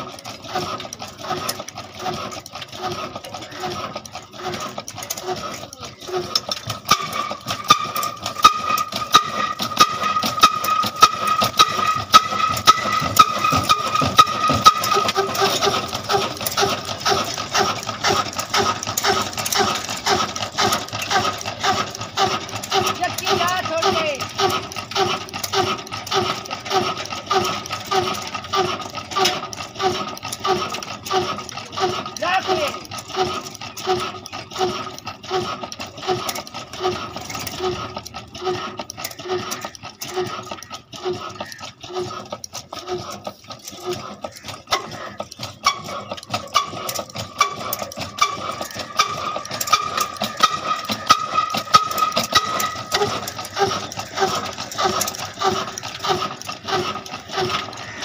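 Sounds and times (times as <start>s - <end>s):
diesel engine running slowly: 0.0s - 58.0s
rapid mechanical clicking: 0.0s - 58.0s.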